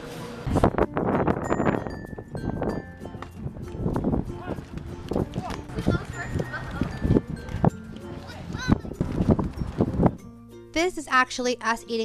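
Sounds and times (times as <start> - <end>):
young children chattering: 8.1 - 9.1.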